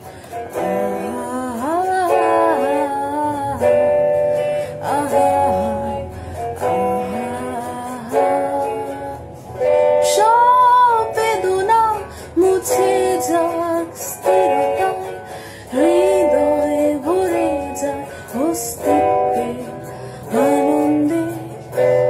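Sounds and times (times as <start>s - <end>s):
strummed guitar chords: 0.0s - 22.0s
woman singing: 0.0s - 22.0s.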